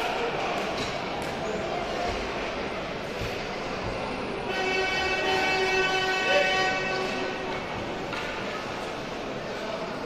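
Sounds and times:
crowd chatter: 0.0 - 10.0
hockey rink horn: 4.4 - 7.6.

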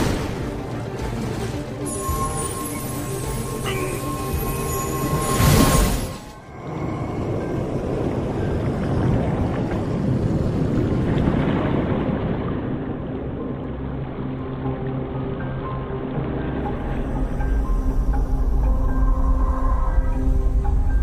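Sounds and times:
film score low notes: 0.0 - 21.0
underwater rumble: 6.5 - 21.0.

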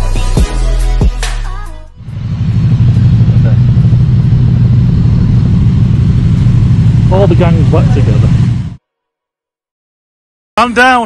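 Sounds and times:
motorcycle engines running slowly: 2.0 - 8.8.

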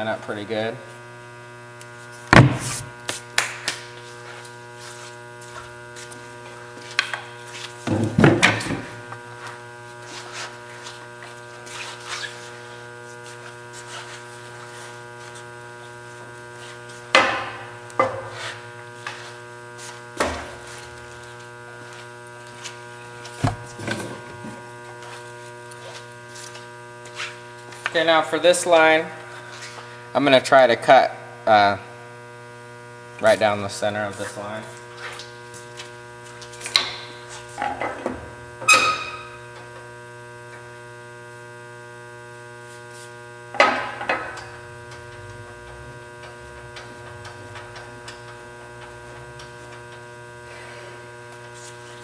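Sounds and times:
table saw running: 43.6 - 51.2.

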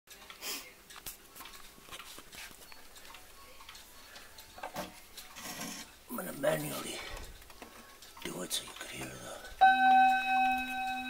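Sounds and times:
pendulum clock ticking: 0.1 - 5.3, 5.9 - 11.0.

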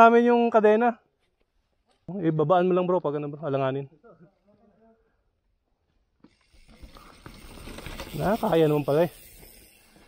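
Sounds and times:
bike tyres on rocky trail: 5.8 - 10.0.

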